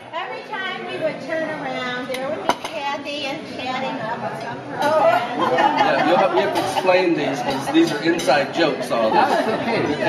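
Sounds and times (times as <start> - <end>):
tableware clinking: 2.1 - 2.8, 6.1 - 8.6.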